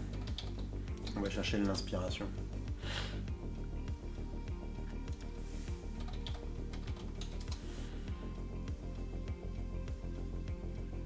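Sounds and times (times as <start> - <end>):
computer keyboard typing: 0.0 - 1.8, 6.0 - 7.6
background music with steady beat: 0.0 - 11.0.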